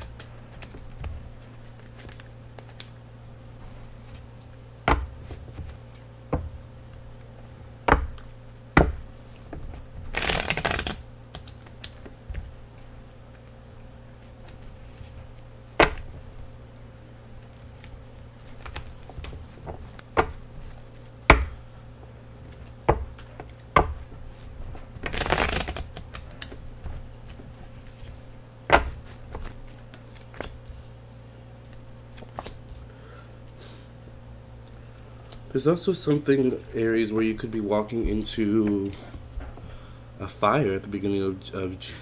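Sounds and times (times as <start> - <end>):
cards riffle shuffling: 9.3 - 13.5, 22.5 - 31.0.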